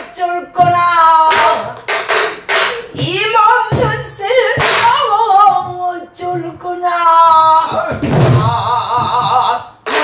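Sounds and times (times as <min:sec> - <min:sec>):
woman singing with vibrato: 0:00.0 - 0:01.9, 0:02.6 - 0:09.7.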